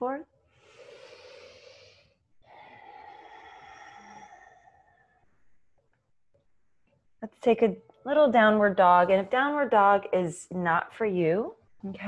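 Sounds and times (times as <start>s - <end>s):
woman exhaling slowly: 0.6s - 5.2s.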